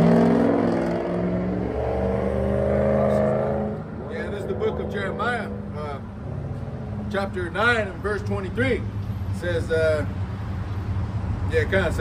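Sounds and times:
vehicle engine droning: 0:00.0 - 0:12.0.

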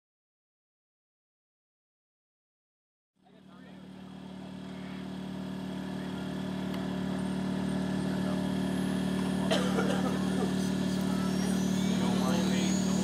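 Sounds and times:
model helicopter engine and rotor: 0:03.2 - 0:13.0.

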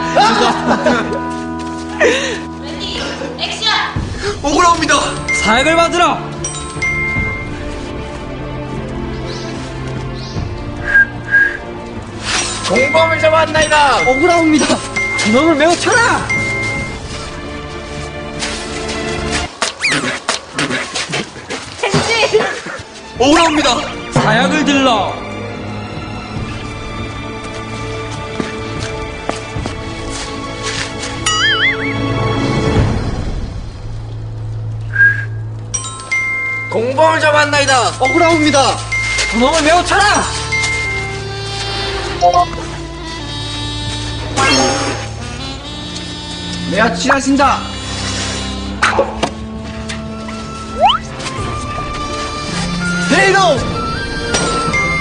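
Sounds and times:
background music: 0:00.0 - 0:55.0
man whistling high notes: 0:10.8 - 0:11.6, 0:34.9 - 0:35.4.

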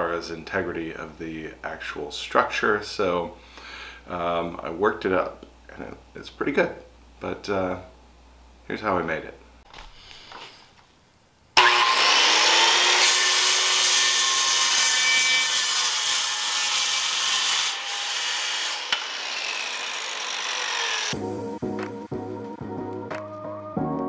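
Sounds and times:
circular saw cutting wood: 0:11.6 - 0:21.2.

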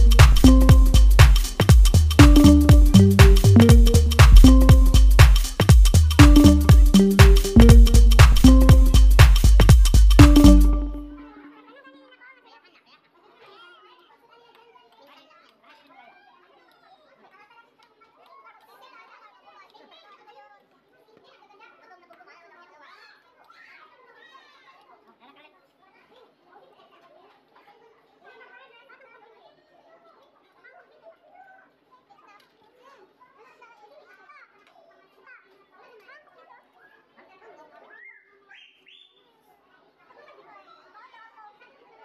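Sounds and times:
chatter of many voices: 0:18.3 - 0:42.0.

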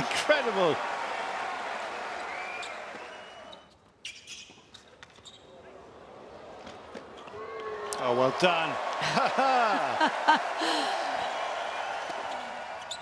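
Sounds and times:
crowd applause: 0:00.0 - 0:03.5, 0:07.6 - 0:13.0.

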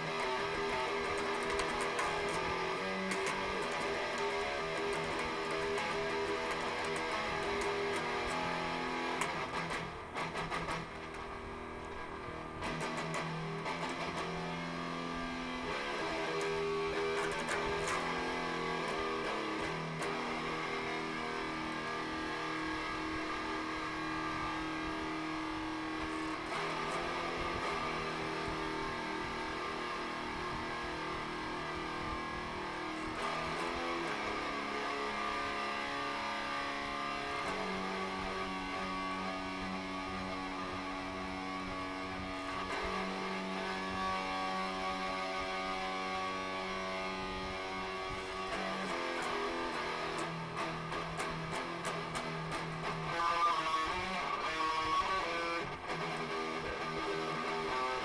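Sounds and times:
sharp clicks: 0:00.0 - 0:11.3, 0:12.6 - 0:14.6, 0:15.7 - 0:20.7
electric guitar chords: 0:00.0 - 0:58.0.

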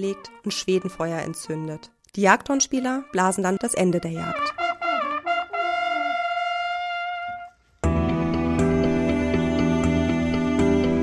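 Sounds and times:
gentle background music: 0:00.0 - 0:05.2, 0:07.8 - 0:11.0
hunting horns blowing: 0:04.2 - 0:07.8.

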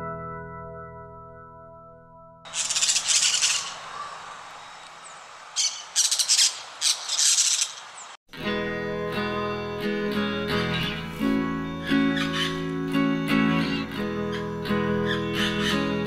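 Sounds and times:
parrots squawking: 0:02.5 - 0:04.8, 0:05.6 - 0:08.0, 0:12.0 - 0:12.7, 0:13.6 - 0:16.0
acoustic guitar music: 0:08.3 - 0:16.0.

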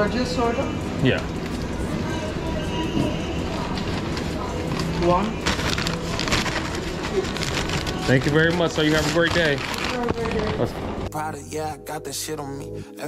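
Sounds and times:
restaurant voices: 0:00.0 - 0:11.8
paper bag rustling: 0:03.4 - 0:11.1.

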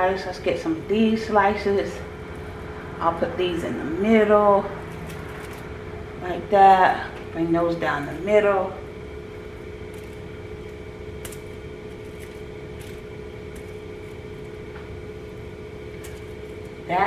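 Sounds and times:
appliance hum: 0:00.0 - 0:17.0.

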